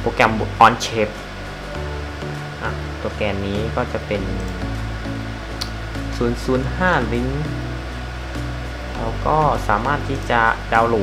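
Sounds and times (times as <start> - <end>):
faint background music: 0.0 - 11.0
steady low hum: 0.0 - 11.0
man's voice: 2.6 - 4.8.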